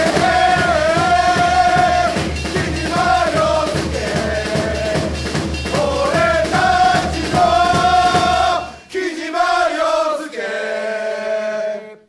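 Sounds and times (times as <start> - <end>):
drum beats: 0.0 - 9.7
group of voices chanting: 0.0 - 12.0.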